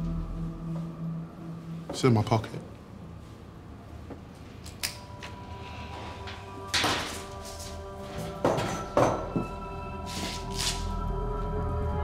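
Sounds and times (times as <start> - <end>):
film score drone: 0.0 - 12.0.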